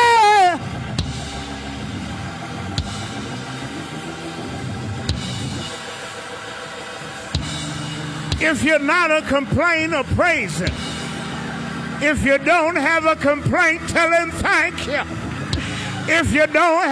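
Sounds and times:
church band sustained chords: 0.0s - 16.9s
drum kit hits: 0.7s - 4.1s, 7.3s - 12.0s.

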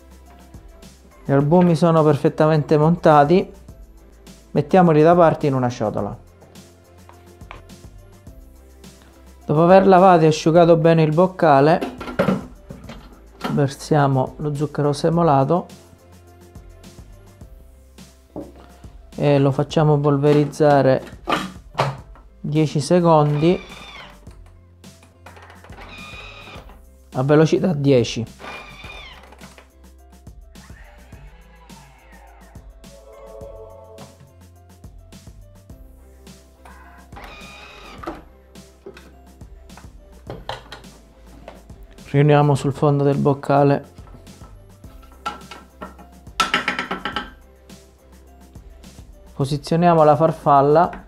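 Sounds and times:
soft background music: 0.0s - 51.0s.

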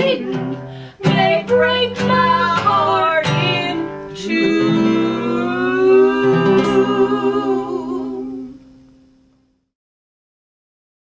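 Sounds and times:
women singing in harmony: 0.0s - 8.6s
strummed acoustic guitar: 0.0s - 9.4s.

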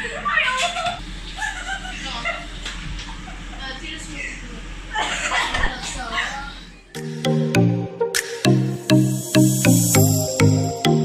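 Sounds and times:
young women laughing: 0.0s - 2.5s.

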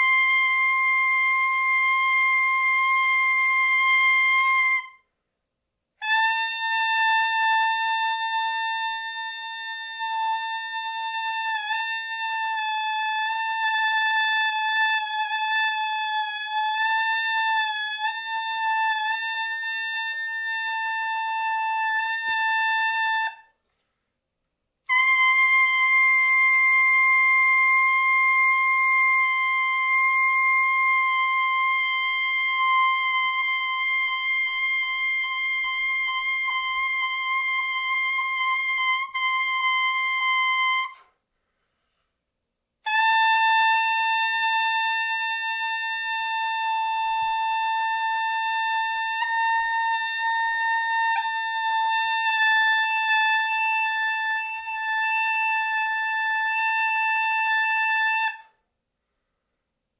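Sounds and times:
soprano saxophone long notes: 6.0s - 23.5s, 24.9s - 41.0s, 42.8s - 58.4s.

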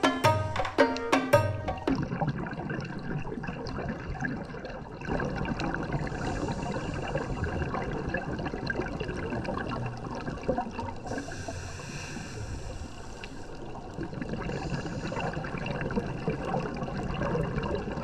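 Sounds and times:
fine underwater crackling: 2.0s - 18.0s.

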